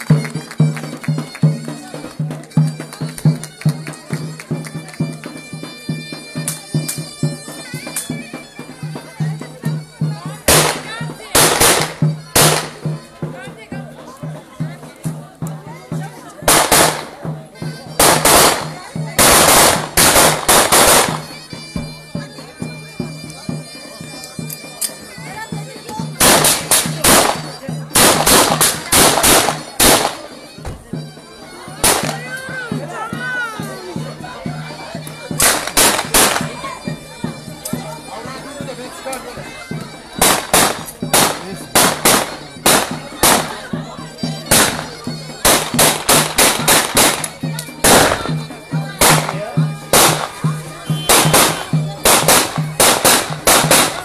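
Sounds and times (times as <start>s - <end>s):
davul drum: 0.0s - 23.1s, 25.2s - 38.0s, 38.6s - 54.0s
reedy wind instrument melody: 0.0s - 54.0s
zurna music: 0.0s - 54.0s
gunfire shots: 16.5s - 17.1s, 26.2s - 27.4s, 28.0s - 30.2s, 31.8s - 32.1s, 40.2s - 43.5s, 49.9s - 50.3s, 51.1s - 54.0s.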